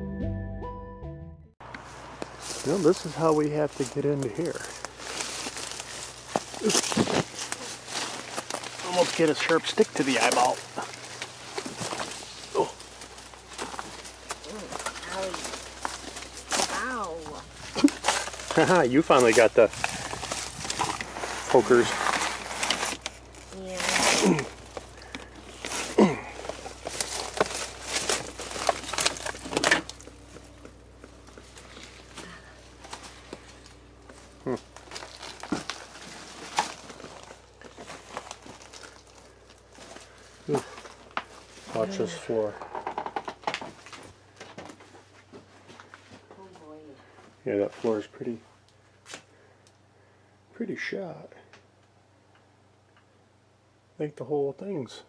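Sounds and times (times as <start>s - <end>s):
footsteps in brush: 1.6s - 42.5s
leaves and twigs rustling and snapping: 1.6s - 46.1s
debris crunching underfoot: 1.6s - 46.5s
low steady hum: 1.6s - 55.0s.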